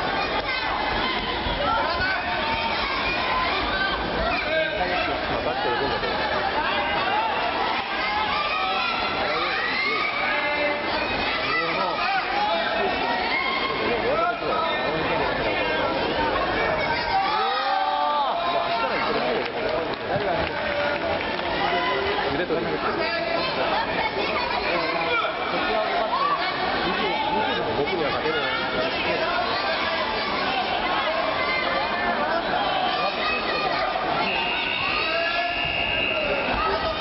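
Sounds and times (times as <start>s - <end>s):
crowd chatter in large hall: 0.0s - 37.0s.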